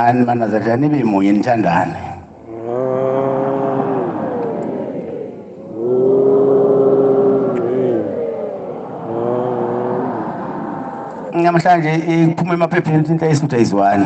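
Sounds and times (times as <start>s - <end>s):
man chanting long notes: 2.4s - 4.8s, 5.6s - 10.4s.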